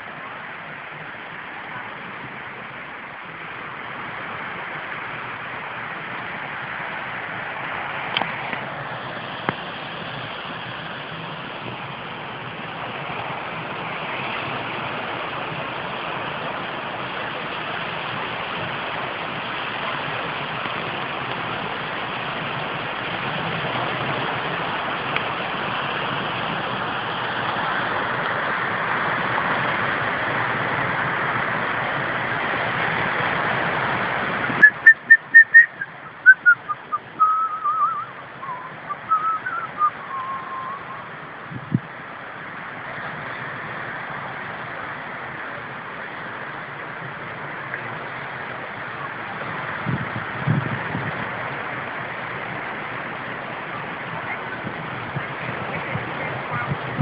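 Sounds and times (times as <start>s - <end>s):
surf: 0.0s - 57.0s
wind: 0.0s - 57.0s
short whistle-like notes: 34.6s - 41.1s.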